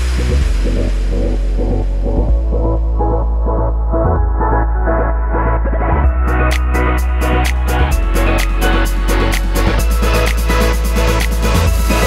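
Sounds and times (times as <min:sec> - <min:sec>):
electronic music with deep bass: 0:00.0 - 0:12.0.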